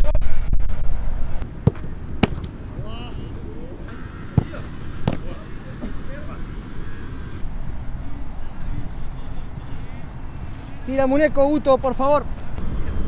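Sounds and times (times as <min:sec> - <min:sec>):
low outdoor rumble: 0:00.0 - 0:13.0
football being kicked: 0:01.4 - 0:02.6, 0:04.3 - 0:05.3.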